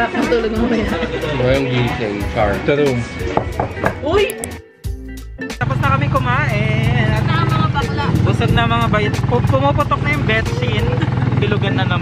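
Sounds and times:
vehicle engine rumbling: 0:05.6 - 0:12.0.

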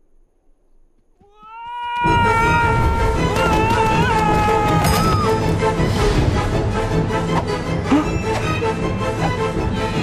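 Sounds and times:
cartoon character screaming: 0:01.3 - 0:05.4.

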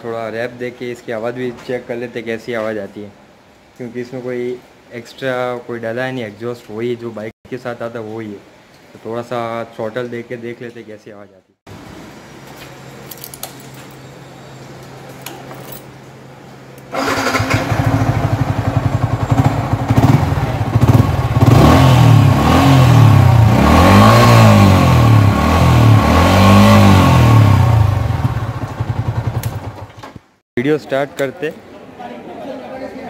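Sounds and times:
motorcycle engine revving: 0:16.9 - 0:30.0.

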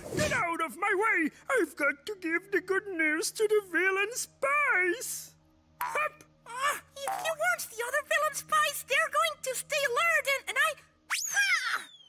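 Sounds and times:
falling whistle: 0:11.1 - 0:12.0.

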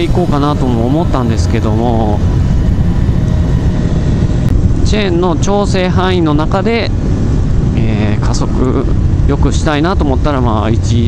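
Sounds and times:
man speaking: 0:00.0 - 0:02.4
wind on microphone: 0:00.0 - 0:11.0.

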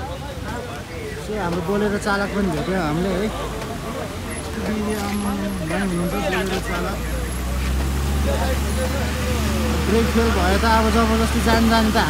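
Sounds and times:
low rumble of road vehicles: 0:00.0 - 0:12.0.

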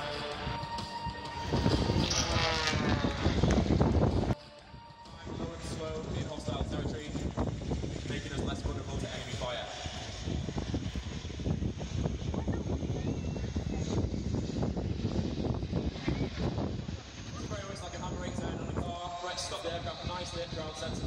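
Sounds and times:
helicopter rotors beating: 0:00.0 - 0:21.0.

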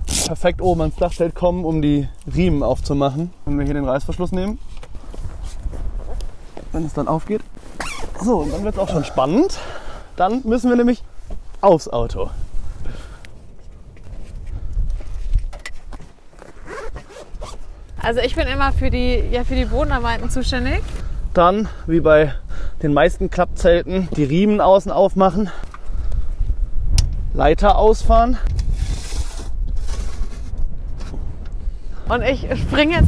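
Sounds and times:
wind on microphone: 0:00.0 - 0:10.0, 0:10.6 - 0:16.0, 0:16.7 - 0:24.9, 0:25.5 - 0:33.0.

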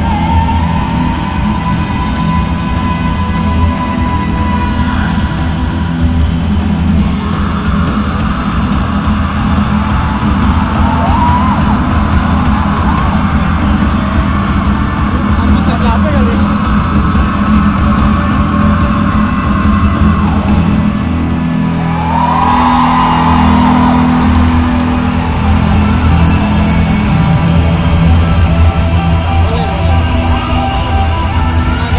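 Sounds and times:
heavy steady bass: 0:00.0 - 0:31.9
rock band through stadium speakers: 0:00.0 - 0:31.9.

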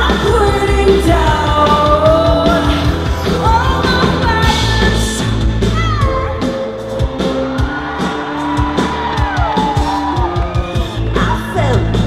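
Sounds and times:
bass guitar: 0:00.0 - 0:12.0
live rock band playing: 0:00.0 - 0:12.0
steady drum beat: 0:00.0 - 0:12.0.

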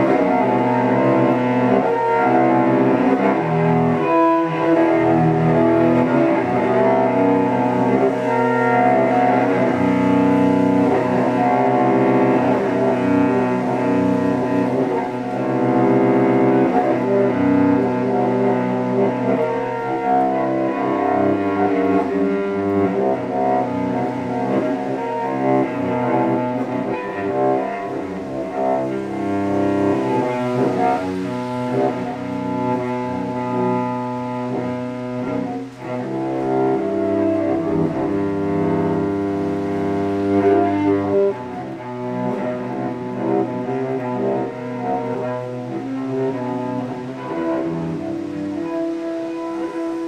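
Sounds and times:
cello bowed drone: 0:00.0 - 0:50.0.

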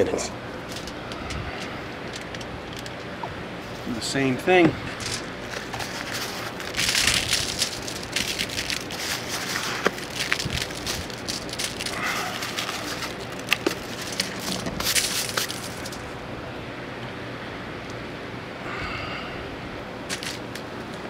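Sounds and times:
aluminium foil crinkling: 0:04.9 - 0:16.1, 0:20.1 - 0:20.7
sugar scattering rustle: 0:05.0 - 0:16.0.

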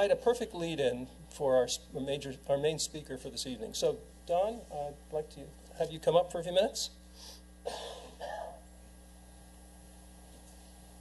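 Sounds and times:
man clearing his throat: 0:07.6 - 0:08.6.

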